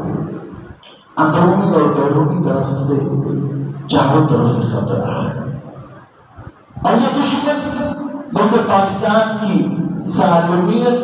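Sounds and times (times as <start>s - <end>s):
man preaching through microphone: 0.0s - 5.9s, 6.8s - 11.0s.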